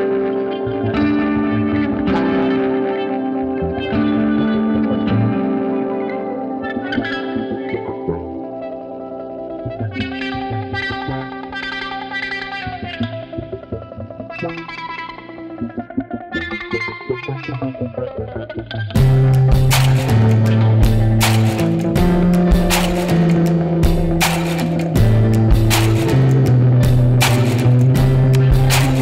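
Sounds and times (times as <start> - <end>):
guitar background music: 0.0 - 29.0.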